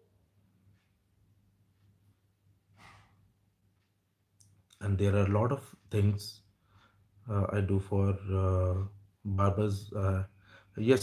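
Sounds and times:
faint breath out: 10.3s - 10.8s.

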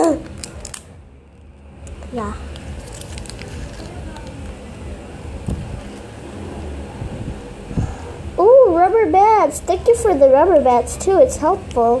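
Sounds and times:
wrapping paper crinkling: 0.0s - 4.6s.

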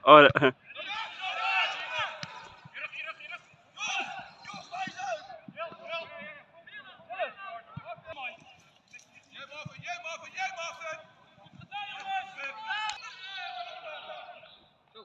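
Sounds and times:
players and spectators shouting: 0.0s - 8.3s, 9.4s - 14.6s.

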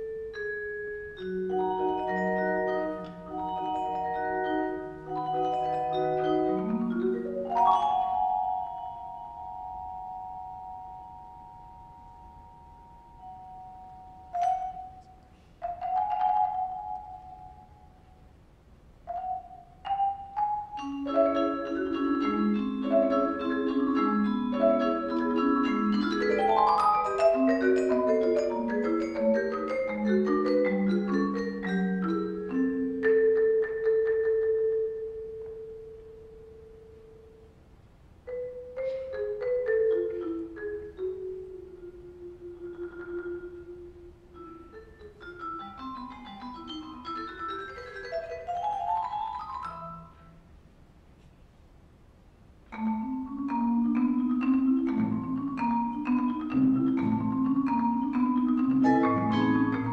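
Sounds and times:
vibraphone chord ringing: 0.0s - 17.8s, 19.1s - 37.4s, 52.7s - 59.9s.

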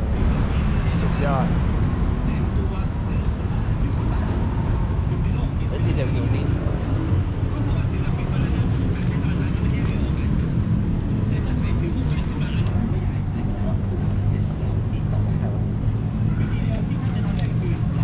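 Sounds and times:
people talking: 0.0s - 1.6s, 2.2s - 18.0s
city road traffic rumble: 0.0s - 18.0s.

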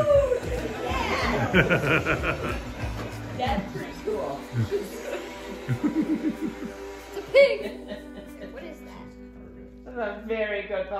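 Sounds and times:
background music: 0.0s - 10.9s
person laughing: 1.3s - 2.9s, 4.5s - 8.6s.

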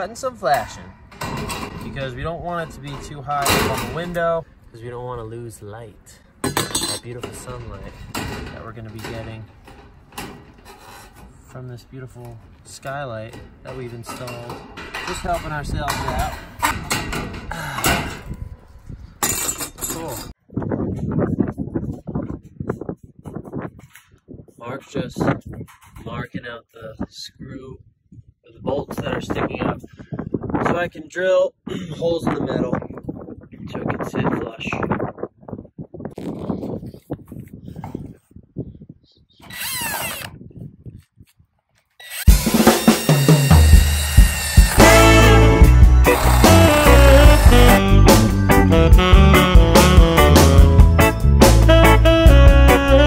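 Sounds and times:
cordless drill whine: 39.4s - 40.3s, 42.0s - 47.8s
loud bass-heavy music: 42.3s - 53.0s.

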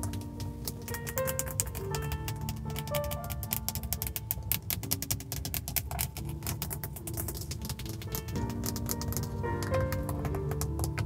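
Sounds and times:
fingernail tapping on plastic: 0.0s - 11.0s
soft background music: 0.0s - 11.0s.

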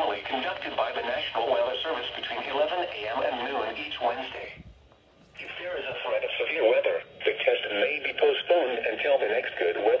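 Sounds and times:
radio voice through small speaker: 0.0s - 4.6s, 5.4s - 10.0s.

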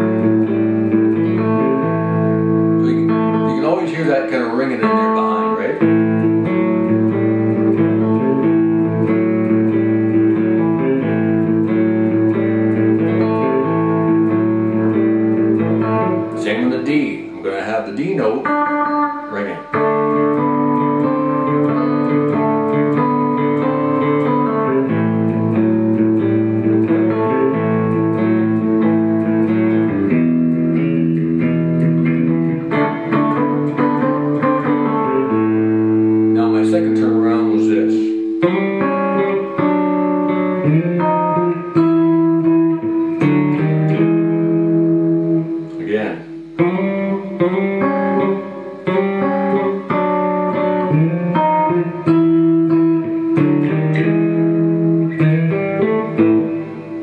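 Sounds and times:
fingerstyle blues electric guitar: 0.0s - 57.0s.

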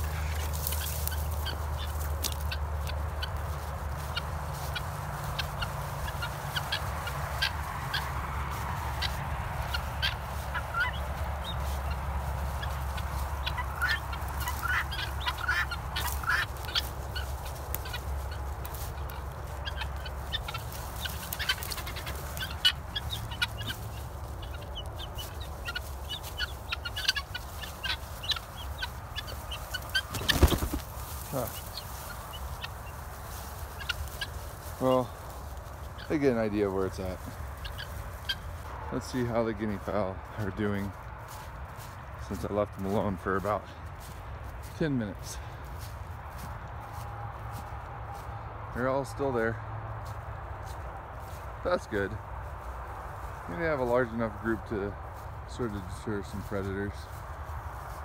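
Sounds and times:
guinea fowl chirping: 0.0s - 48.5s.

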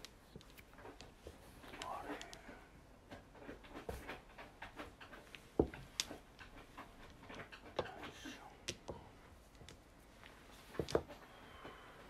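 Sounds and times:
mahjong tiles clacking: 0.0s - 11.2s.

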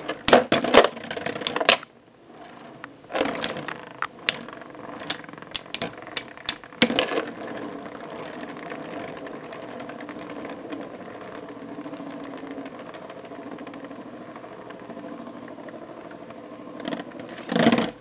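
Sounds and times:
spinning tops clacking: 3.4s - 3.7s, 4.3s - 7.1s
spinning tops whirring: 4.3s - 7.1s.

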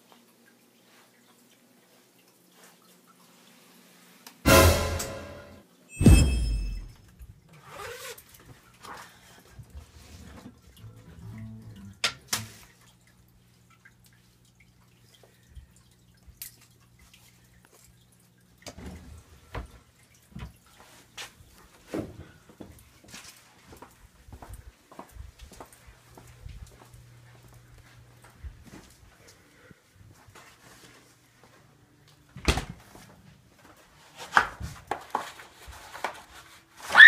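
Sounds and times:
loud thump: 4.5s - 6.9s
faint low hum: 9.2s - 20.1s
footsteps in a house: 20.3s - 36.6s.

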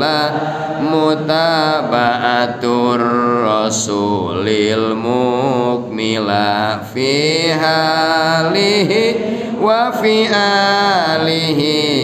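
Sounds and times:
man chanting recitation: 0.0s - 12.0s.

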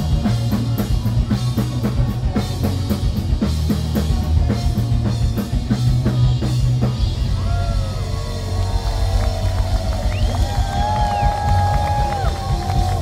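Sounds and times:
bass guitar: 0.0s - 13.0s
drums: 0.0s - 13.0s.

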